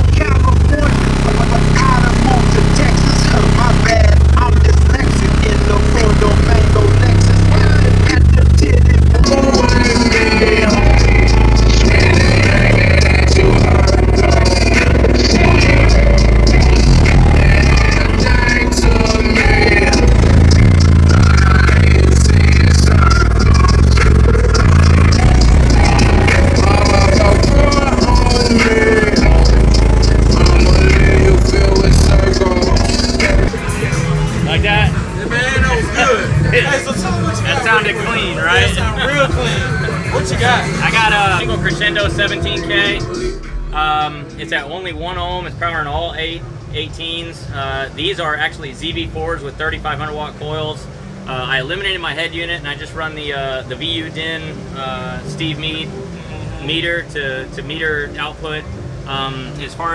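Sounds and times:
loud song with deep bass: 0:00.0 - 0:44.7.

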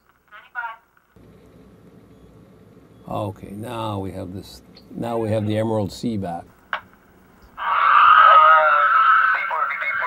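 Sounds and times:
garbled voice over two-way radio: 0:07.6 - 0:10.0.

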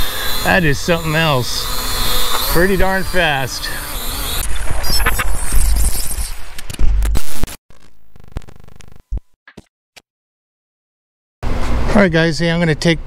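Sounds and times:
loud static with deep bass: 0:06.7 - 0:09.2.

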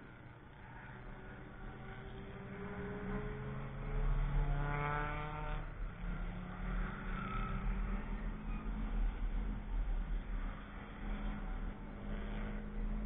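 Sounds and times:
car engine accelerating: 0:01.8 - 0:08.1.

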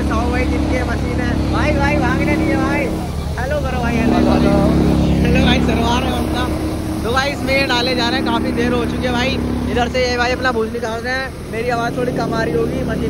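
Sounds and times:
thresher machine droning: 0:00.0 - 0:13.0
voices talking: 0:00.0 - 0:13.0.

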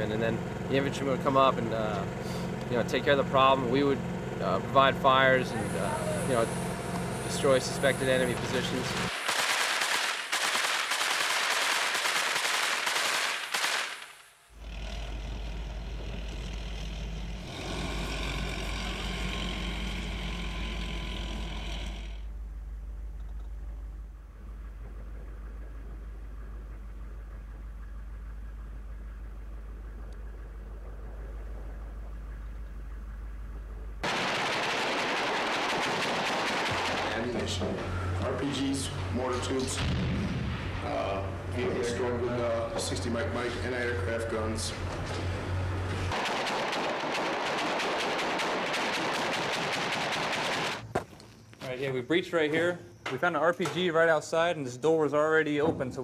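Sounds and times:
rapid gunfire: 0:09.1 - 0:14.2, 0:34.0 - 0:37.7, 0:46.1 - 0:50.8
steady low rumble: 0:14.5 - 0:50.2.

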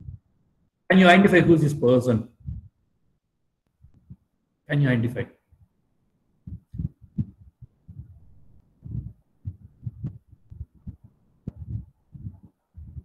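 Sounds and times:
low muffled thumps: 0:02.4 - 0:02.8, 0:06.4 - 0:13.0.

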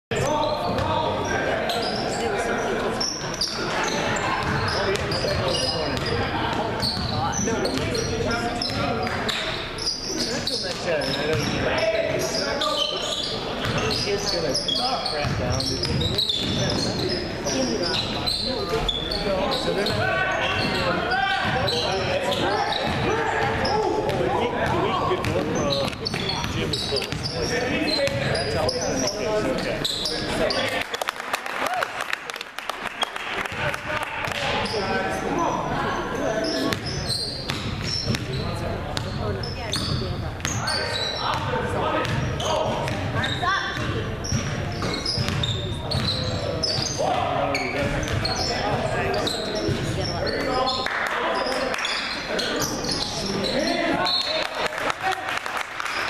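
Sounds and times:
voices echoing in gym: 0:00.1 - 0:56.0
basketball bouncing on wooden floor: 0:37.5 - 0:38.3, 0:43.8 - 0:46.2.

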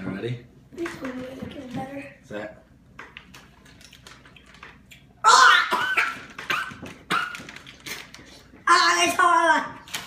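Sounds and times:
child shrieking: 0:05.2 - 0:06.6.

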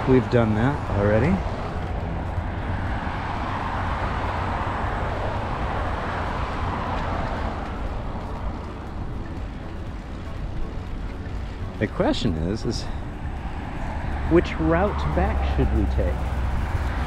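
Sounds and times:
distant car traffic: 0:00.0 - 0:17.0.

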